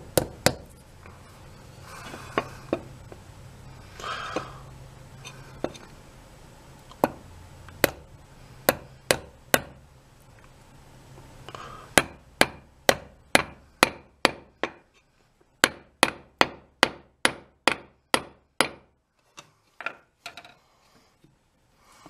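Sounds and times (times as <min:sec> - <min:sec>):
hammer striking wedge: 0:00.0 - 0:00.7, 0:07.8 - 0:08.1, 0:08.7 - 0:09.8, 0:11.9 - 0:14.9, 0:15.6 - 0:18.9.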